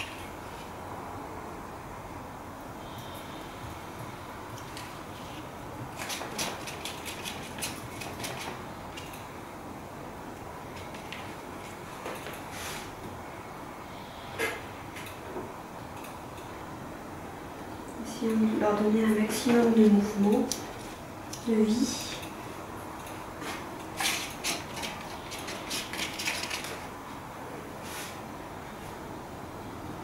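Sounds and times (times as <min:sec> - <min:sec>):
background hiss: 0:00.0 - 0:05.6.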